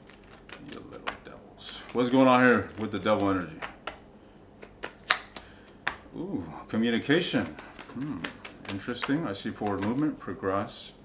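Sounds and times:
cards being flicked: 0.0s - 6.1s, 6.8s - 10.2s.

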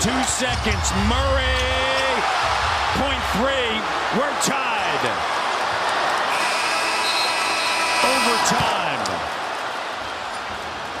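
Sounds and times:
arena crowd noise: 0.0s - 11.0s
game clock horn: 6.3s - 8.5s.

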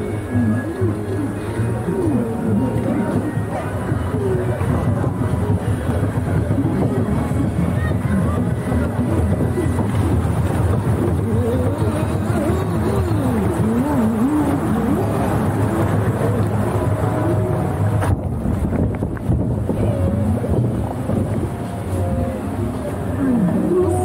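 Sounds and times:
boat running hum: 0.0s - 24.0s.

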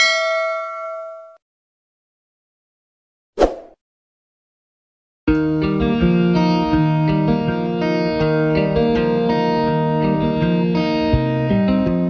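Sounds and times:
bell ding sound effect: 0.0s - 1.4s.

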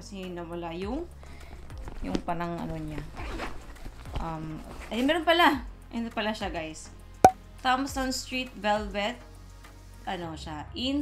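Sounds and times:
handbag zipper opening: 1.8s - 5.1s.

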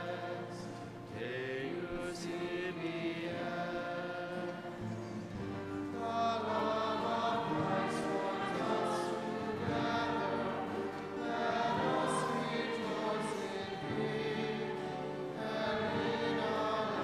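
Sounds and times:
church choir singing a hymn: 0.0s - 17.0s
steady accompanying notes: 0.0s - 17.0s.

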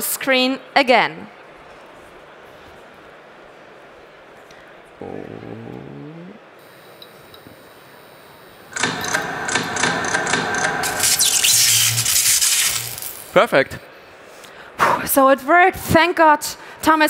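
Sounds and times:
crackling electrical buzzing surge: 10.8s - 13.4s.

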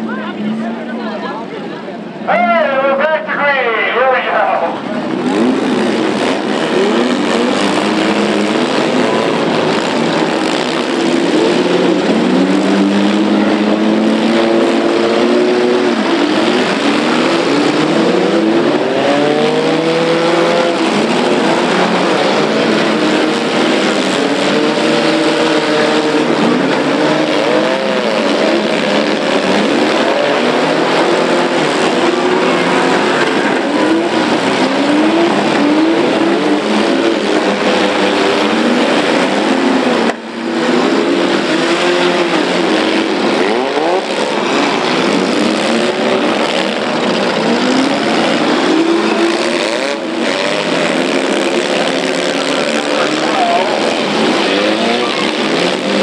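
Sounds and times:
car engines revving: 0.0s - 56.0s.

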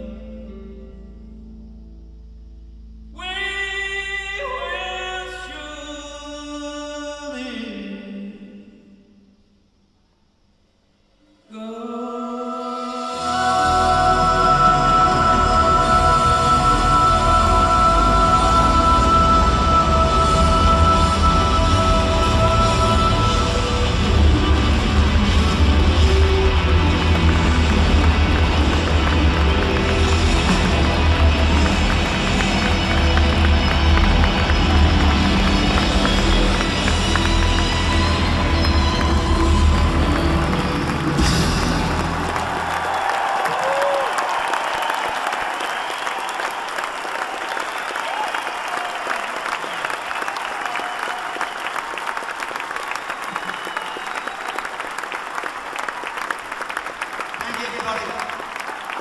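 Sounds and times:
audience applause and cheering: 13.2s - 59.0s.

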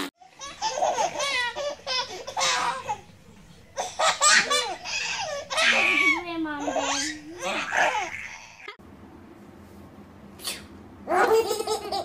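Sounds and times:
babies giggling: 0.3s - 3.1s, 3.8s - 8.8s, 11.1s - 12.0s
short breathy hiss: 10.4s - 10.7s.

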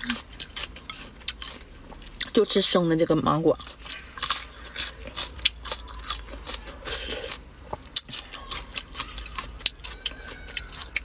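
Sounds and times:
person crunching raw mango: 0.0s - 2.3s, 3.6s - 11.0s.

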